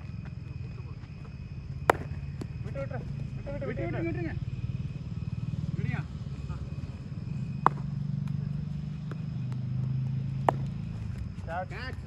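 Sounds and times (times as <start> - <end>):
low steady hum: 0.9 - 3.6
cricket bat striking ball: 1.8 - 2.8, 7.6 - 8.4, 9.0 - 11.2.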